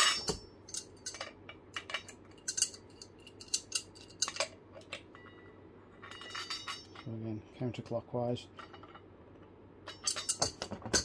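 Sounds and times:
wrench clinking against metal: 0.0s - 4.5s, 5.2s - 7.1s, 9.9s - 11.0s.

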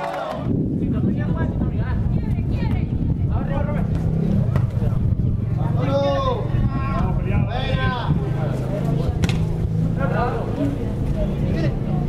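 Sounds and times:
steady low rumble: 0.5s - 12.0s
voices calling out: 3.8s - 12.0s.

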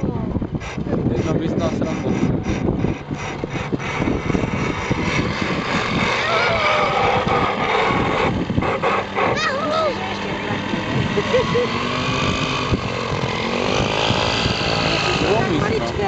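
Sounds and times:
steady rumbling noise: 0.0s - 16.0s
people's voices: 13.6s - 16.0s.

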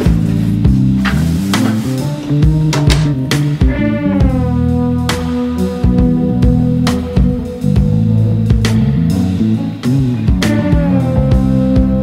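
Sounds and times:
sustained bass notes: 0.0s - 12.0s
drum beat: 2.4s - 9.3s.

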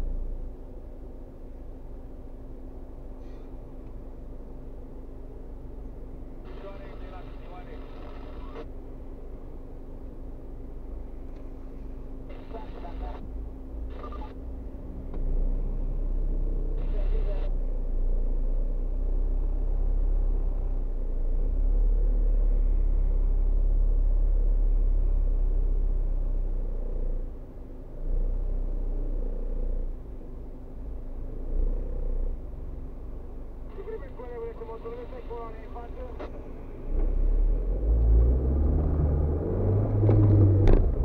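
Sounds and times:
car engine idling: 0.0s - 41.0s
cars passing: 33.7s - 41.0s.

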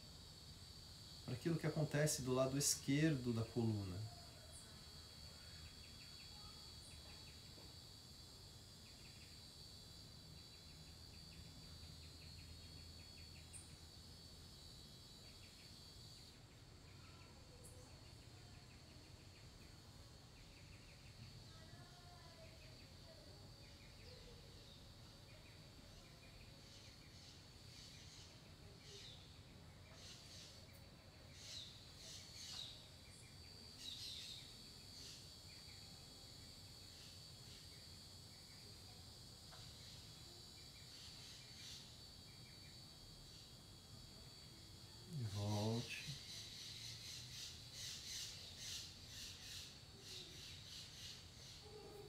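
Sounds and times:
high-pitched insect drone: 0.0s - 52.0s.

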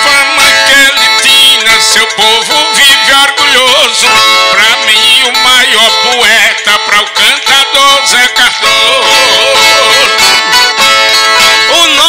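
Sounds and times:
plucked steel-strung guitar music: 0.0s - 12.0s.

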